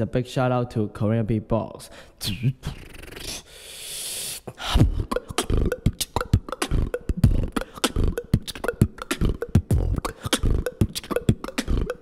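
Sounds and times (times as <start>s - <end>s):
fast beatboxing: 2.2s - 12.0s
rising mouth hiss: 2.8s - 4.6s.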